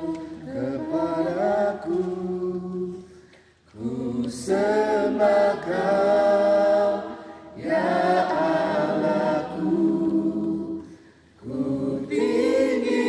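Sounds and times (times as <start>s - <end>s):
group singing a cappella: 0.0s - 13.0s.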